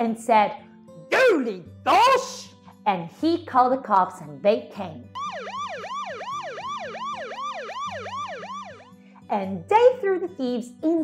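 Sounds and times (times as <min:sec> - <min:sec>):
police siren yelping: 0:05.2 - 0:08.9.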